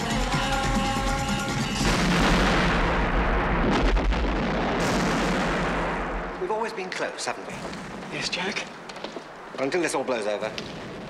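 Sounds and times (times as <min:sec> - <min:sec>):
explosion blast: 0:01.8 - 0:06.7
sharp cracks: 0:01.8 - 0:11.0.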